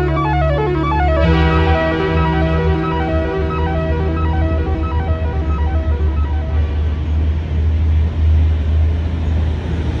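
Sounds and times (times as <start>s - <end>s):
melody: 0.0s - 7.4s
train rumbling past: 0.0s - 10.0s.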